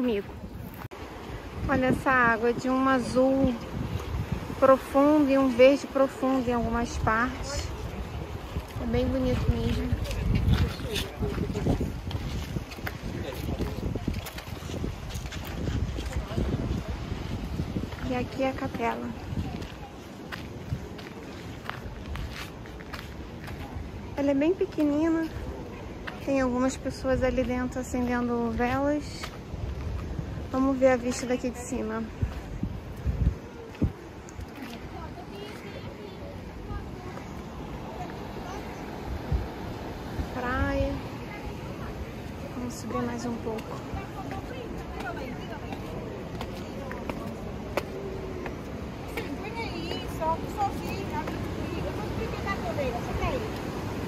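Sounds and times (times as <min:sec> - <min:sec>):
people talking: 0:00.0 - 0:00.3, 0:01.6 - 0:03.8, 0:04.6 - 0:08.0, 0:08.7 - 0:12.0, 0:17.9 - 0:20.2, 0:23.5 - 0:29.4, 0:30.5 - 0:32.3, 0:33.2 - 0:39.5, 0:40.2 - 0:53.8
surf rushing: 0:00.0 - 0:27.1, 0:28.2 - 0:54.0
wind: 0:00.0 - 0:54.0
footsteps on stone paving: 0:07.6 - 0:54.0.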